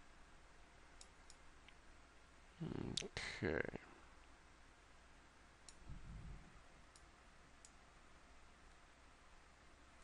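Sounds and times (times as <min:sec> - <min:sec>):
faint computer mouse clicks: 0:05.6 - 0:05.9.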